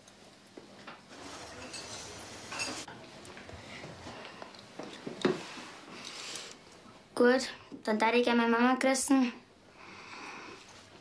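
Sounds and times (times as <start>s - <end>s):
dishes and cutlery clinking: 1.0s - 2.9s.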